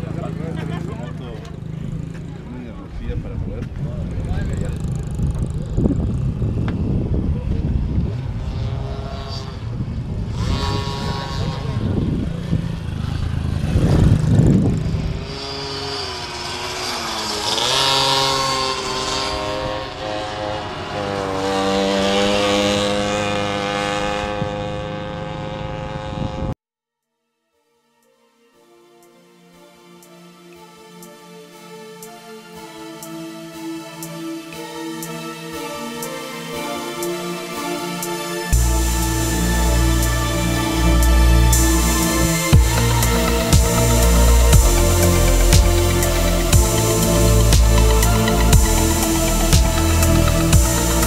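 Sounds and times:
people talking: 0:00.0 - 0:06.0
high engine tone: 0:00.0 - 0:26.6, 0:30.0 - 0:51.0
motorcycle engines revving: 0:00.0 - 0:26.6, 0:32.6 - 0:51.0.

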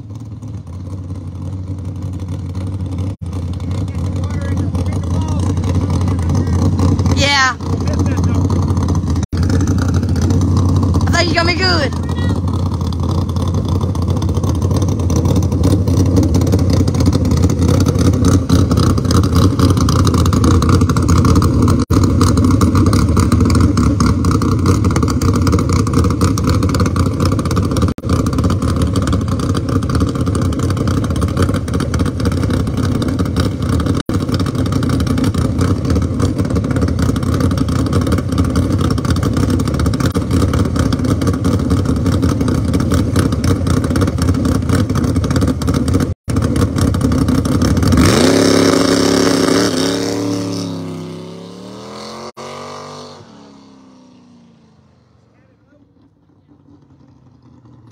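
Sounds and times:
drag car engine revving: 0:00.0 - 0:57.9
gear changes: 0:00.5 - 0:53.5.

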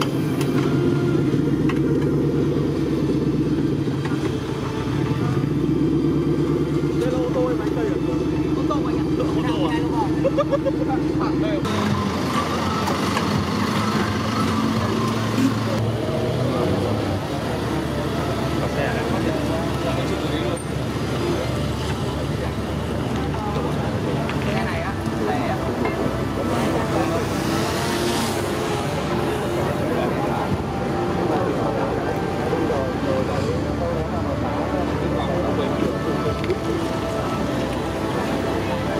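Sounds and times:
murmur of people talking: 0:00.0 - 0:38.9
vehicle engine running: 0:00.0 - 0:38.9.

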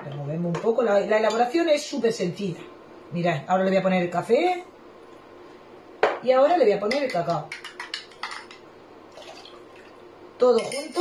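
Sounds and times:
liquid pouring into bowl: 0:09.1 - 0:10.1.

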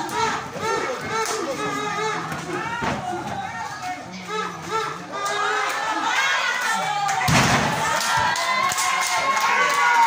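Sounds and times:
children shouting and cheering: 0:00.0 - 0:10.0.

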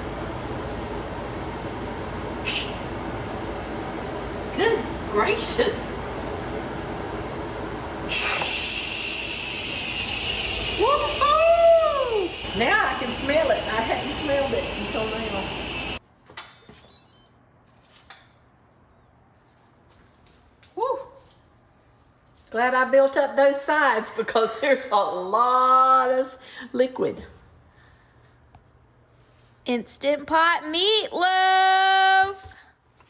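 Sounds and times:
pressure cooker steam hissing: 0:02.4 - 0:02.8, 0:08.1 - 0:16.0.

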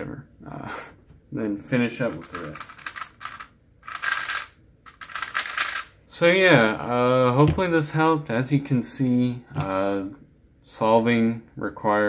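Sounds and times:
plastic clacking of puzzle cube: 0:02.1 - 0:05.9.

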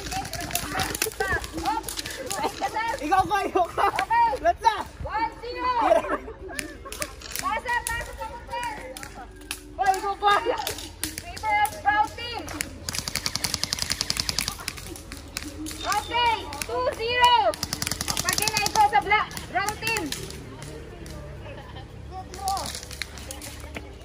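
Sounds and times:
airsoft guns firing on full auto: 0:12.8 - 0:16.3, 0:17.2 - 0:20.2.

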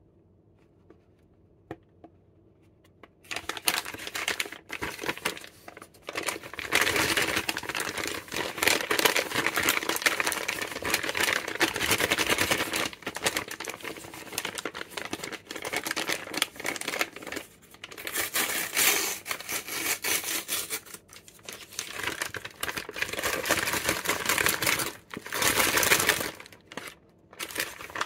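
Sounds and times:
plastic bag crinkling: 0:03.2 - 0:28.0.

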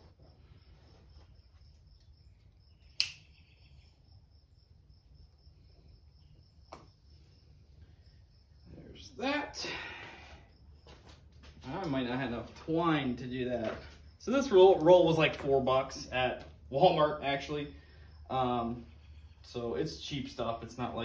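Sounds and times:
pocket knife click: 0:03.0 - 0:03.2.

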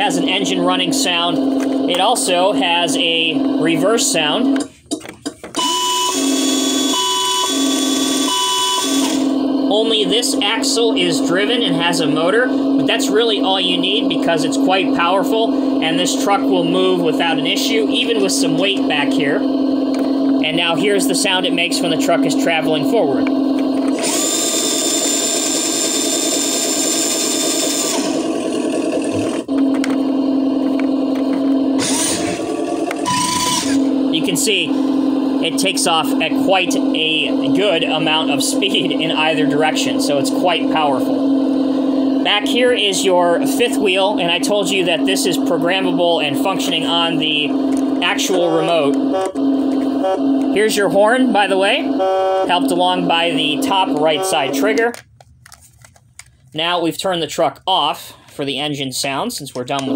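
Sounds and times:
reverse warning beeps: 0:05.6 - 0:09.2, 0:33.0 - 0:33.9
electric motor whir: 0:05.6 - 0:10.0, 0:23.2 - 0:39.5
toy engine sound effect hum: 0:05.6 - 0:55.0.

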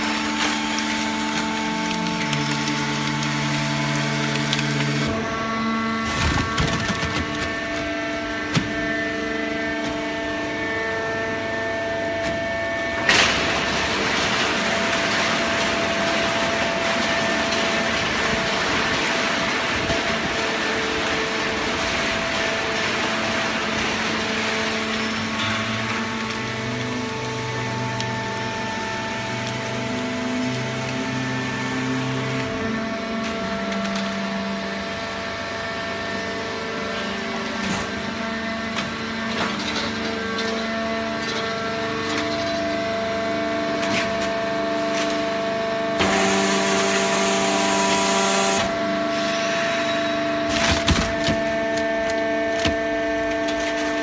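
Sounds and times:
hydraulic baler humming: 0:00.0 - 0:54.0.

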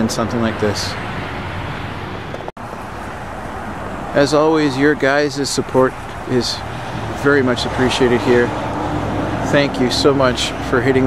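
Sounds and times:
road traffic hiss: 0:00.0 - 0:11.0.

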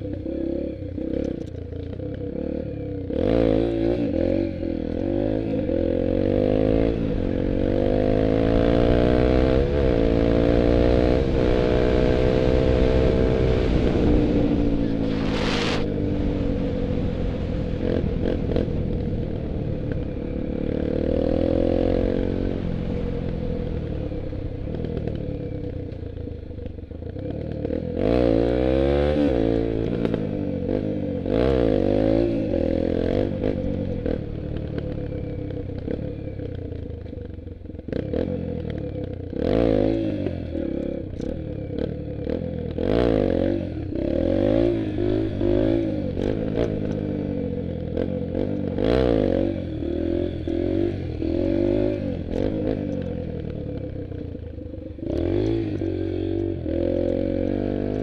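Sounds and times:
dirt bike engine revving: 0:02.3 - 0:19.7, 0:20.3 - 0:23.2, 0:27.1 - 0:35.0, 0:39.3 - 0:58.0.

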